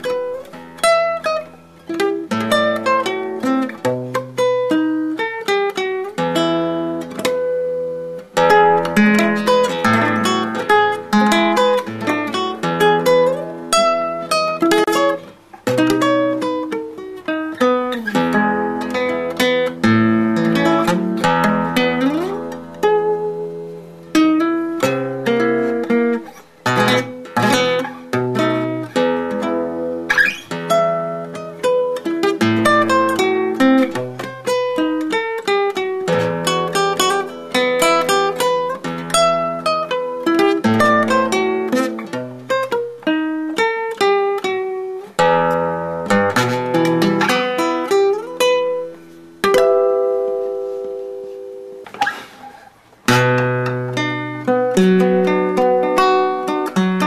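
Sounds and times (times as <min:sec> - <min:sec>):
classical guitar fingerstyle: 0:00.0 - 0:57.0.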